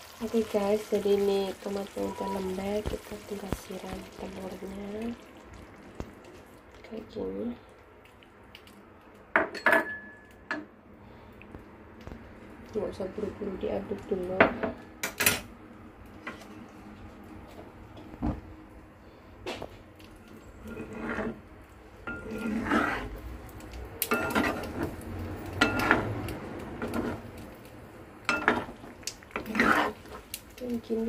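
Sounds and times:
metal spatula scraping a frying pan: 0:20.6 - 0:21.4, 0:22.1 - 0:23.2, 0:24.1 - 0:24.9, 0:25.6 - 0:26.1, 0:29.4 - 0:30.2.

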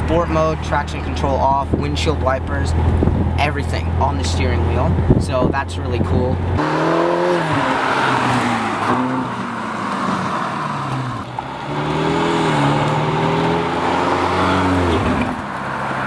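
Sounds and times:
car engine revving: 0:00.0 - 0:16.0
tyre and road noise: 0:00.0 - 0:16.0.

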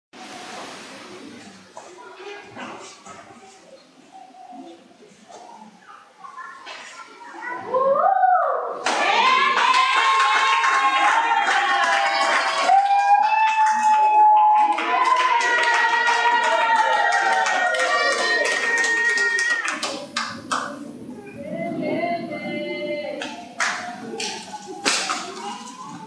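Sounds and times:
hand clapping: 0:11.6 - 0:20.8, 0:23.2 - 0:25.8.

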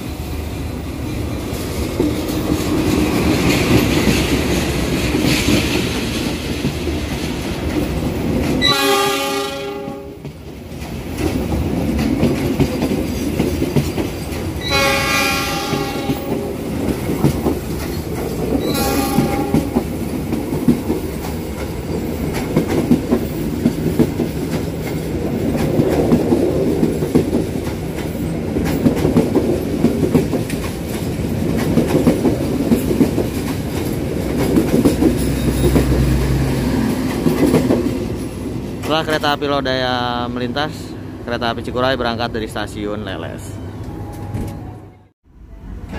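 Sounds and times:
train coaches rumbling past: 0:00.0 - 0:45.9
diesel locomotive horn: 0:08.6 - 0:10.2, 0:14.6 - 0:16.6, 0:18.6 - 0:19.8.

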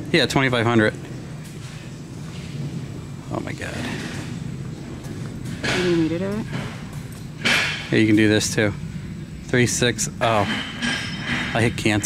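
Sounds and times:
room noise hum and hiss: 0:00.0 - 0:12.0.

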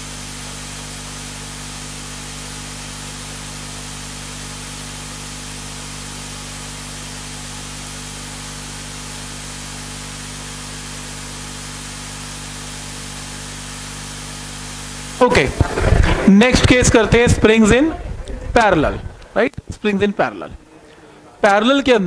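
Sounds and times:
steady hiss: 0:00.0 - 0:20.6
low hum: 0:15.2 - 0:19.6.

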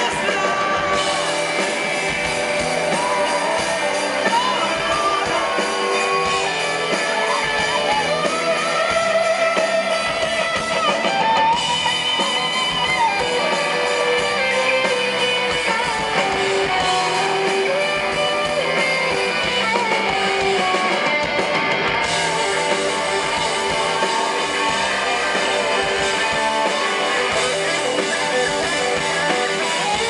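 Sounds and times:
drums: 0:00.0 - 0:30.0
electric guitar bending lead notes: 0:00.0 - 0:30.0.

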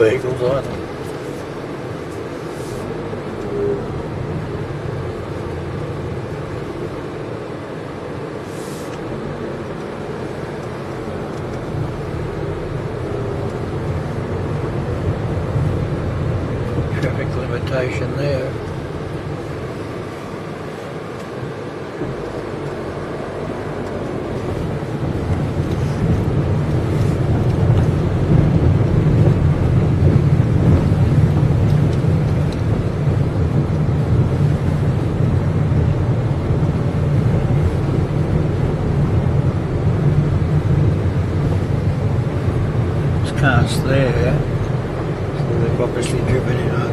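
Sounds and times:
car engine and tyres rumbling: 0:00.0 - 0:46.9.

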